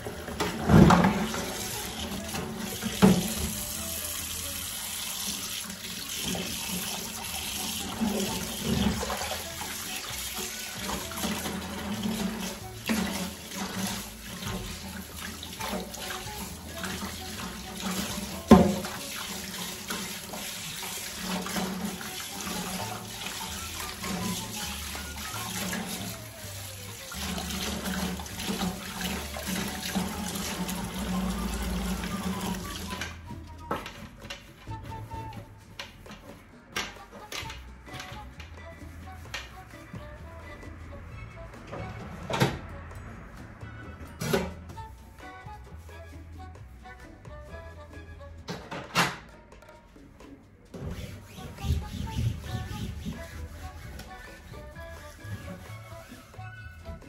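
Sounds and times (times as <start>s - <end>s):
tap running into metal sink: 0.3s - 3.8s, 5.2s - 26.2s.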